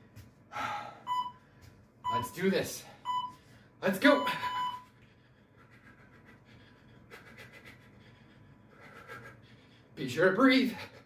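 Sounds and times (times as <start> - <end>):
man exhaling breathily: 0.5 - 1.1.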